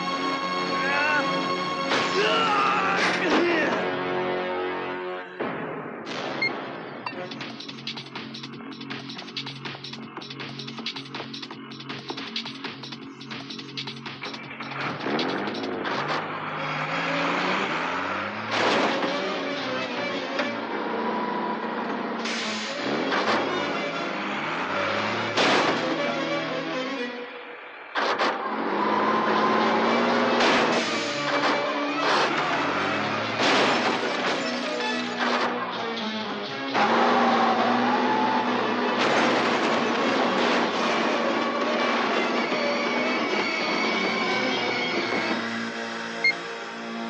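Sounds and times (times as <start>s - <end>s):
heavy bus engine under load: 7.1s - 47.0s.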